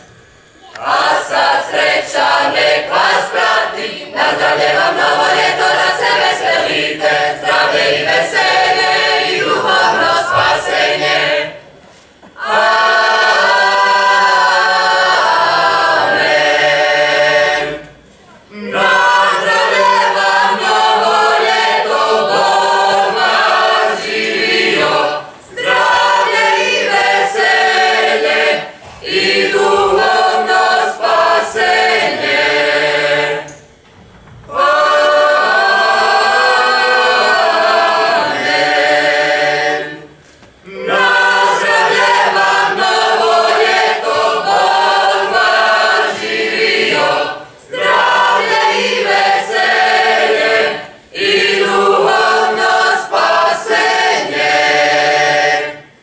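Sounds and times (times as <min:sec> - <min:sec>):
group singing a cappella folk song: 0:00.0 - 0:56.0.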